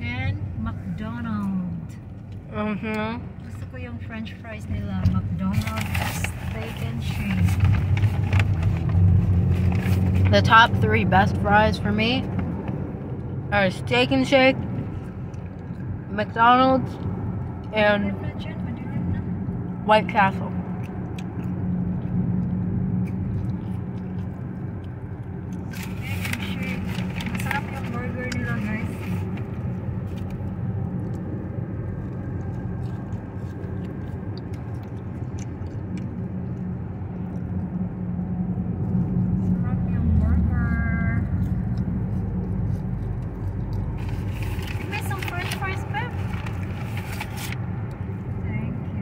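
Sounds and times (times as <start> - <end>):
road and engine noise in car: 0.0 - 49.0.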